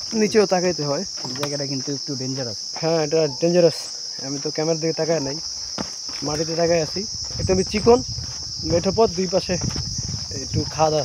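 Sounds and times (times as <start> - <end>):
man talking: 0.0 - 5.5, 6.2 - 9.7, 10.3 - 11.0
insect chorus: 0.0 - 11.0.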